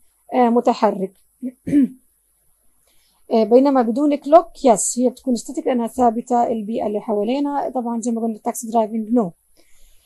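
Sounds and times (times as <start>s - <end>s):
woman clearing throat: 1.4s - 2.0s.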